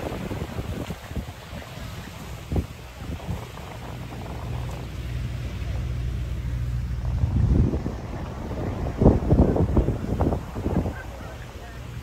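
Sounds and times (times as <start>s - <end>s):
outboard engines droning: 0.0s - 12.0s
wind buffeting microphone: 0.0s - 12.0s.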